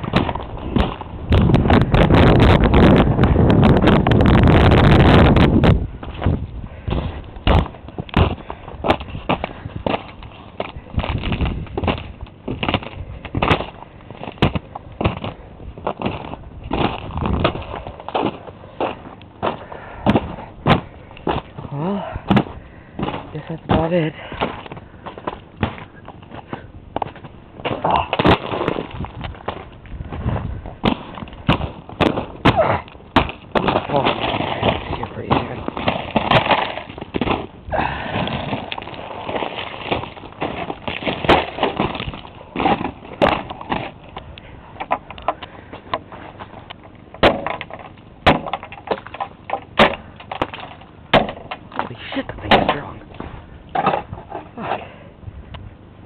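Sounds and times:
footsteps crunching icy snow: 0.0 - 3.0, 6.0 - 44.3.

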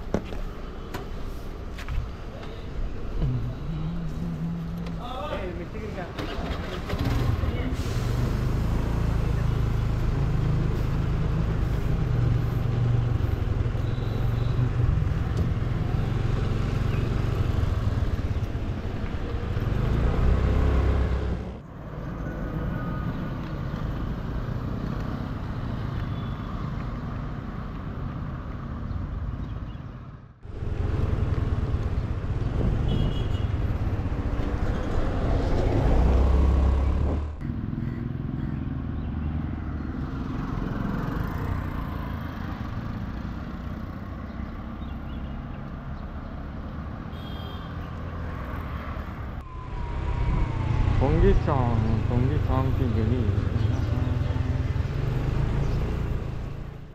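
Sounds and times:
road and wind rumble: 0.0 - 56.9.

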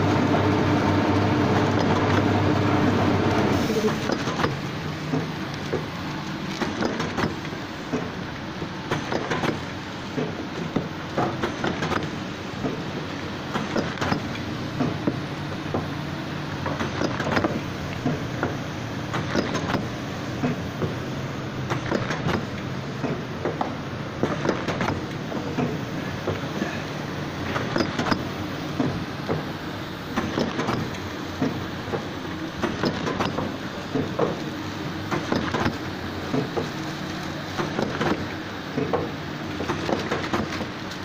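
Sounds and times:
machine motor hum: 0.0 - 41.0
mechanism clicks and knocks: 6.5 - 8.1, 16.6 - 20.9, 21.7 - 26.4, 27.4 - 29.5, 30.2 - 34.4, 35.1 - 36.7.

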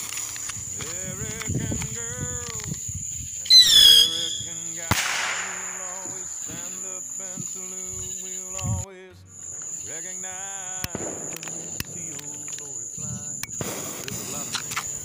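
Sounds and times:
crickets chirping: 0.0 - 15.0
rocket whistle falling in pitch: 3.5 - 6.6
firework pop with crackle: 4.9 - 6.7, 10.9 - 14.9.

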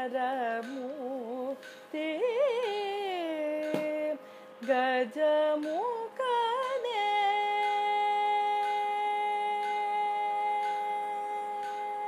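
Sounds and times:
soft plucks: 0.0 - 12.0.

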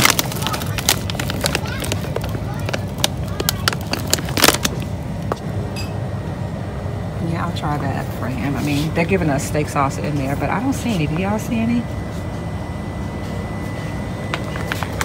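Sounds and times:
plastic snack bag crackling: 0.0 - 4.9
low store hum: 0.0 - 15.0.

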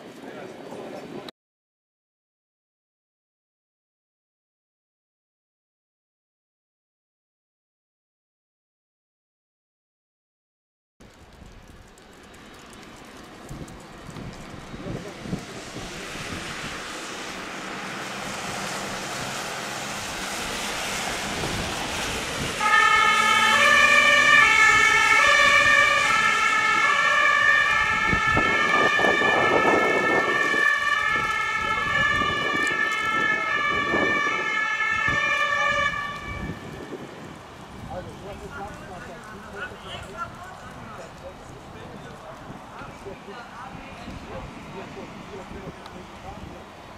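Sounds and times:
vehicle engine and tyres: 11.0 - 46.9
engine pulling hard: 11.1 - 46.8
two-tone ambulance siren: 17.8 - 37.1.

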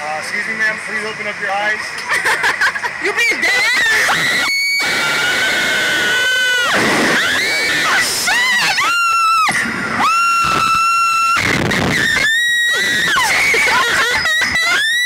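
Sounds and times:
women screaming: 3.3 - 15.0.

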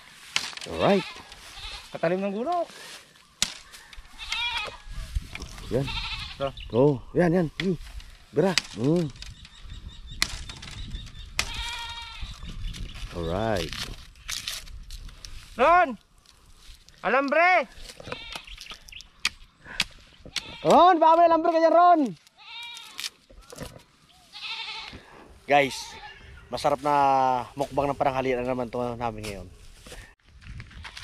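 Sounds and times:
goat bleating: 0.7 - 2.4, 4.1 - 4.8, 5.6 - 6.6, 11.4 - 12.4, 18.0 - 18.6, 20.3 - 21.1, 22.4 - 23.0, 24.3 - 26.3.

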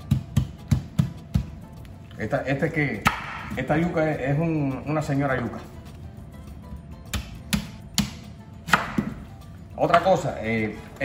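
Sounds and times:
knife chopping on wooden board: 0.0 - 1.6, 3.0 - 3.8, 7.1 - 9.2.

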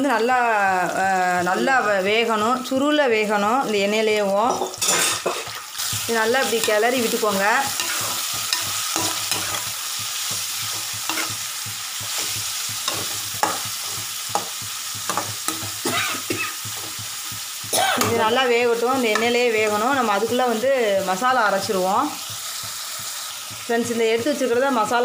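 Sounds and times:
prawns sizzling in hot oil: 0.0 - 25.0.

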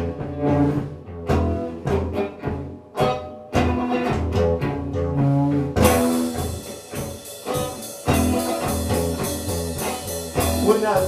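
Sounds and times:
bass line: 0.0 - 11.0
drums: 0.0 - 11.0
electric guitar: 0.0 - 11.0.

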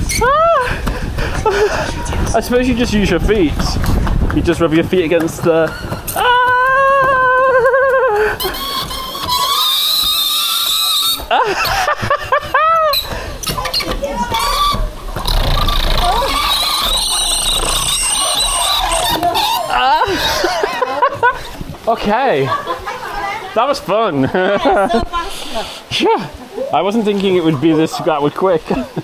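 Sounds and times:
rushing rubbing of slide ride: 0.0 - 20.7
high-pitched squeals: 8.4 - 11.4, 12.9 - 19.8.

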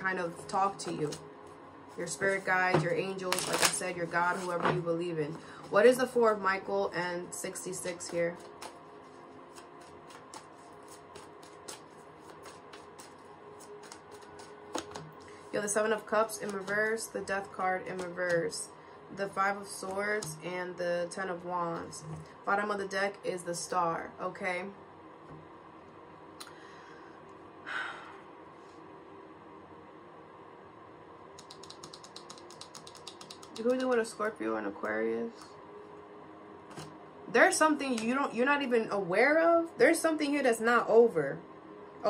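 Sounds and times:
cards being shuffled: 3.3 - 4.8, 7.8 - 15.5, 16.4 - 16.8.

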